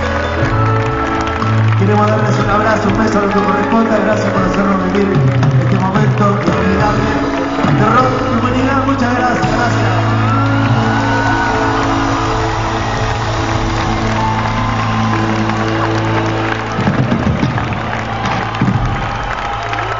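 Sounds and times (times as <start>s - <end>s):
crowd cheering and whooping: 0.0s - 19.9s
rock band sustained chord: 6.9s - 19.9s.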